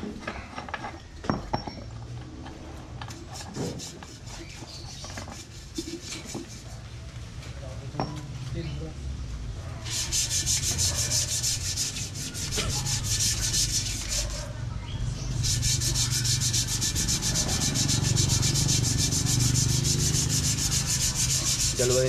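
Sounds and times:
fast rasping like sanding: 0:03.1 - 0:06.8, 0:09.8 - 0:22.0.

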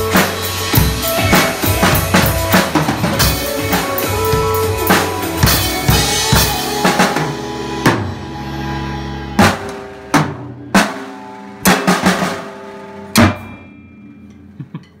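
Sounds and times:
drum kit strokes ringing out: 0:00.0 - 0:15.0.

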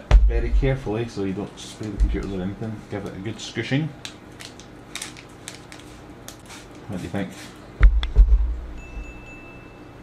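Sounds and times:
spray bottle squirting water: 0:05.0 - 0:07.6.

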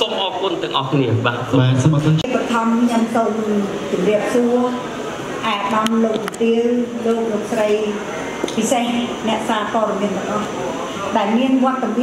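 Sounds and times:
woman speaking into a microphone: 0:02.2 - 0:12.0.

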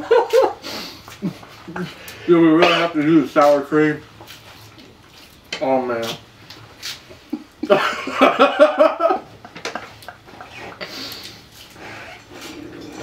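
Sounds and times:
man laughing: 0:00.0 - 0:02.0, 0:07.2 - 0:11.0
taco shells and wrappers rustling: 0:04.1 - 0:07.4.

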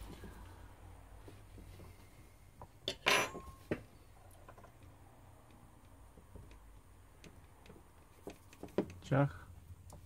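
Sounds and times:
small clicks and taps: 0:04.3 - 0:09.0.

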